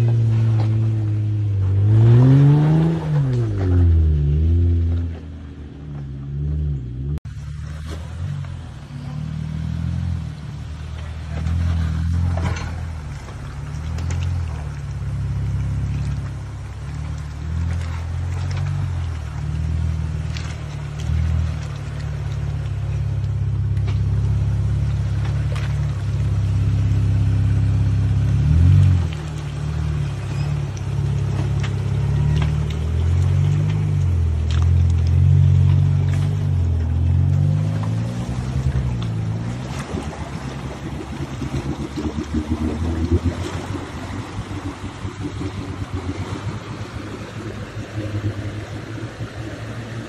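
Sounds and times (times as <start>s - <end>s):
engine running at low speed: 0.0s - 50.0s.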